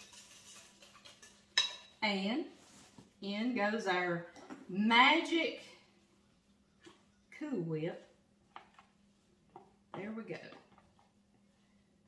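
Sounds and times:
whisk scraping in bowl: 0:00.0 - 0:01.4.

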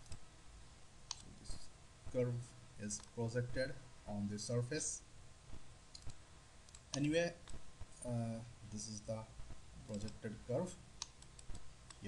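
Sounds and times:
computer mouse clicks: 0:00.0 - 0:00.2, 0:01.1 - 0:01.3, 0:05.9 - 0:07.6, 0:09.9 - 0:10.2, 0:11.0 - 0:12.0.

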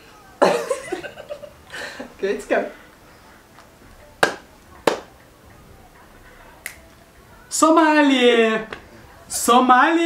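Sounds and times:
finger snaps: 0:06.6 - 0:06.9.

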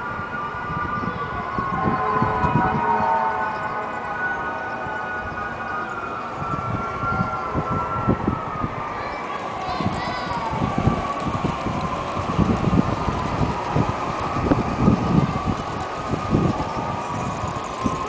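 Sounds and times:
high wavering whine: 0:00.0 - 0:18.0
wind buffeting microphone: 0:00.0 - 0:18.0.

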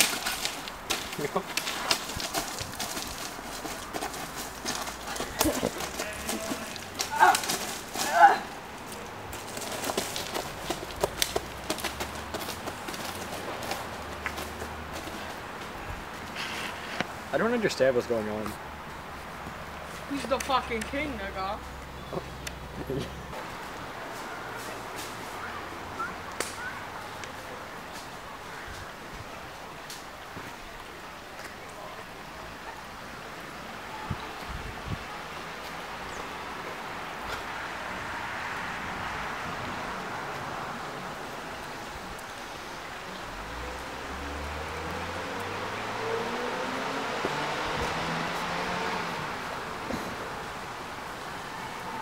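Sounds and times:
sharp crack: 0:00.0 - 0:03.2, 0:26.3 - 0:26.7
footsteps on dry leaves and gravel: 0:00.0 - 0:15.6
steady outdoor hiss: 0:00.0 - 0:52.0.

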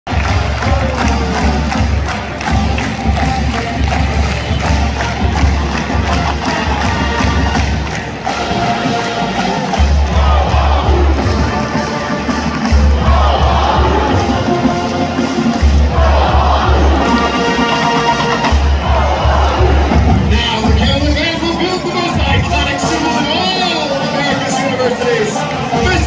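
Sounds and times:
steady drumbeat: 0:00.1 - 0:24.4, 0:25.6 - 0:26.0
marching band playing: 0:00.1 - 0:26.0
stadium crowd cheering: 0:00.1 - 0:26.0.

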